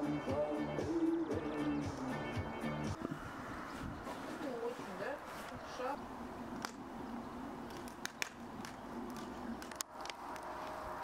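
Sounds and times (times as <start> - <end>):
sharp clicks: 7.7 - 10.5.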